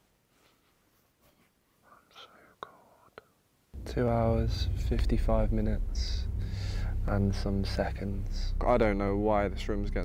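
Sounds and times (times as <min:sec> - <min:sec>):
faint whisper: 0:01.8 - 0:08.5
man speaking: 0:03.8 - 0:10.0.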